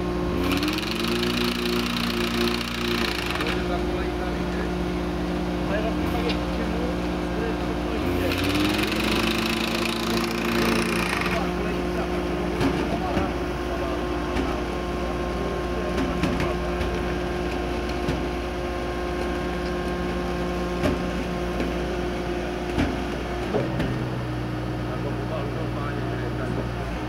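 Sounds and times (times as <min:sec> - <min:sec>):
tracked machine engine running: 0:00.0 - 0:27.0.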